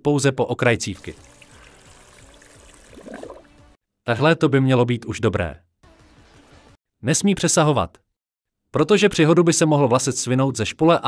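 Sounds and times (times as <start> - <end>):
water trickling and sloshing: 1.1 - 3.8.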